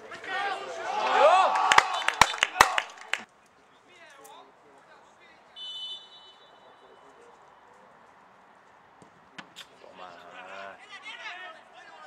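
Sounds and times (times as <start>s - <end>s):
crowd shouting and cheering: 0.0s - 3.3s
outdoor ambience: 0.0s - 12.0s
sharp claps: 1.5s - 3.3s
referee's whistle blast: 5.6s - 6.7s.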